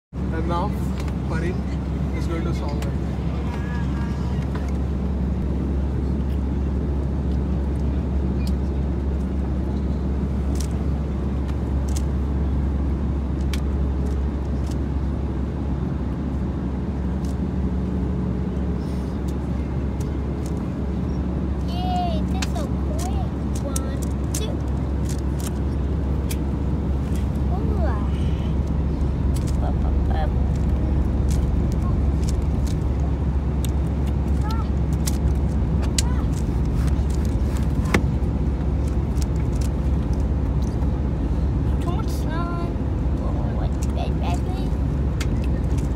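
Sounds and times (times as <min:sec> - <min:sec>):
airliner cabin drone: 0:00.2 - 0:45.9.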